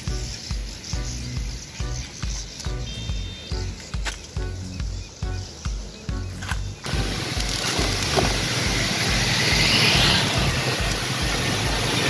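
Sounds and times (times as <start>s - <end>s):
motor scooter engine running: 0.0s - 12.0s
wind and road noise: 0.0s - 12.0s.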